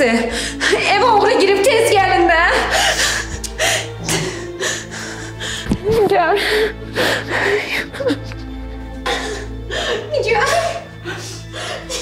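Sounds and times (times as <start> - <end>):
woman sobbing and gasping: 0.0 - 1.1, 2.4 - 12.0
low background music: 0.0 - 12.0.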